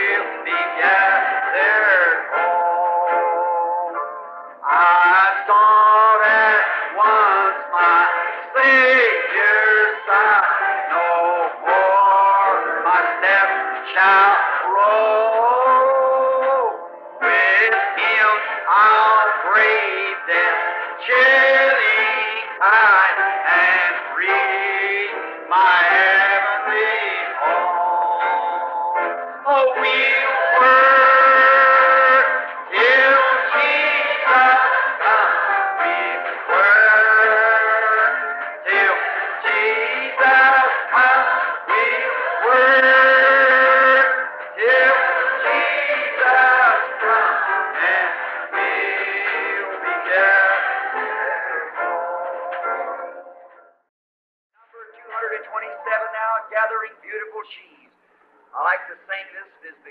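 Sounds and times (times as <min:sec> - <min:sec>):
voices singing a hymn: 0:00.0 - 0:03.1, 0:04.7 - 0:53.2.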